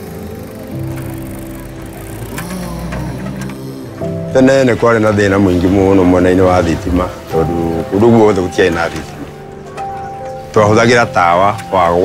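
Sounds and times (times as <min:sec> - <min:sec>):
vehicle engine running: 0:00.0 - 0:04.4
soft background music: 0:00.0 - 0:12.0.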